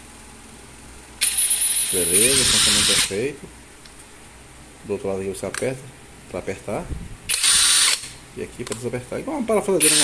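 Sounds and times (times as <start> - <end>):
impact wrench motor whine: 7.3 - 8.1.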